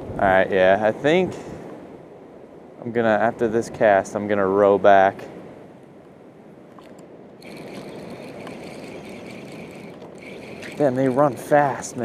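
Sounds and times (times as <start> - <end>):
faint clicks: 6.7 - 11.4
fishing reel whirring: 6.8 - 12.0.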